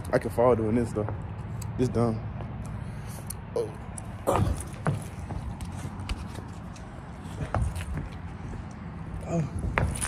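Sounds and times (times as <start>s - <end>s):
footsteps: 3.8s - 10.0s.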